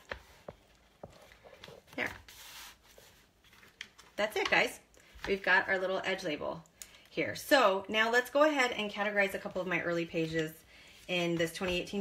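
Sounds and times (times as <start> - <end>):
paper rustle: 0.0 - 4.2.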